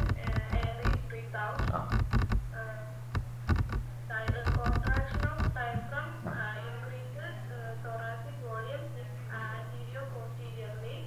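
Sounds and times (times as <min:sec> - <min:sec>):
computer clicks and taps: 0:00.0 - 0:01.0, 0:03.1 - 0:05.6
low electrical hum: 0:00.0 - 0:11.0.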